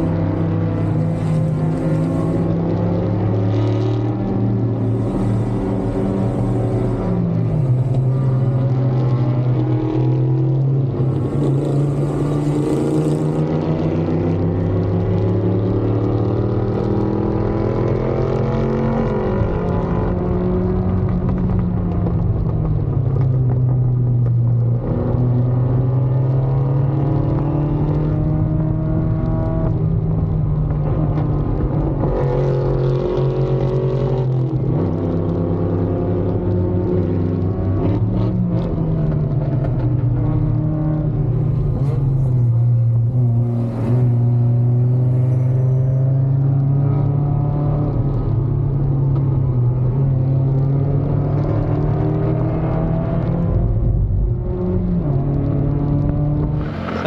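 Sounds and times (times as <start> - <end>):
race car engine revving: 0.0 - 21.6, 31.1 - 57.0.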